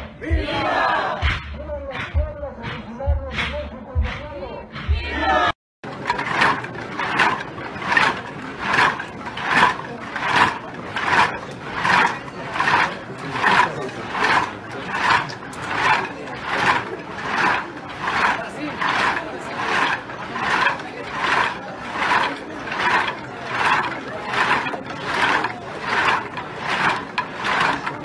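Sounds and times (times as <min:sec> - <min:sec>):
crowd chanting in unison: 0:00.2 - 0:01.4, 0:04.7 - 0:05.6.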